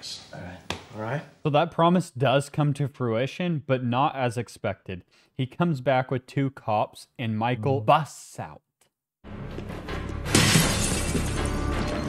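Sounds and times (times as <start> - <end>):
film score music: 9.3 - 12.0
glass shattering: 10.2 - 12.0.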